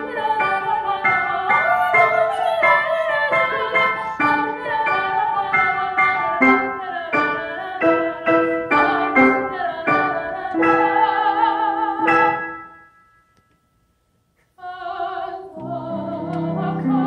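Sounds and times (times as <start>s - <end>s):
soprano singing: 0.0s - 12.6s, 14.6s - 17.0s
piano: 0.0s - 13.7s, 14.6s - 17.0s.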